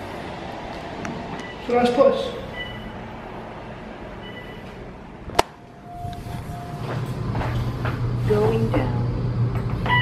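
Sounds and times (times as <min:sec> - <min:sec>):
elevator hum: 0:00.0 - 0:10.0
short beep: 0:02.5 - 0:03.0, 0:04.2 - 0:04.7, 0:05.8 - 0:06.9.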